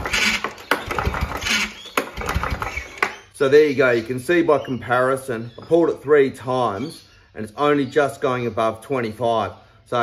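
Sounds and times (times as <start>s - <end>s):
recoil starter cord pulls: 0.0s - 3.2s
lawn mower engine cranking: 0.0s - 3.3s.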